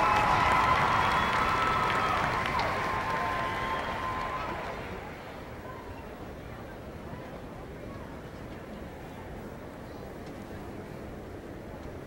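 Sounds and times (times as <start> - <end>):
crowd applause and cheering: 0.0 - 5.1.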